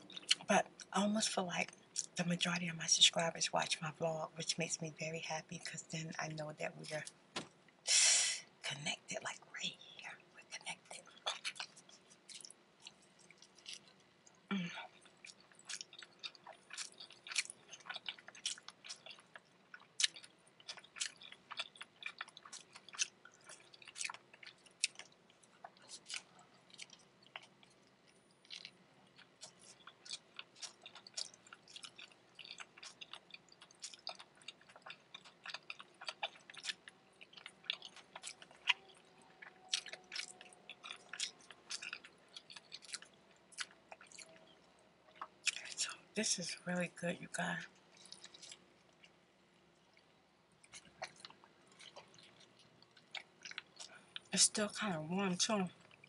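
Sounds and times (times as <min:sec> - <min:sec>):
mouth chewing food: 0:00.0 - 0:00.9, 0:09.3 - 0:46.0, 0:47.6 - 0:54.5.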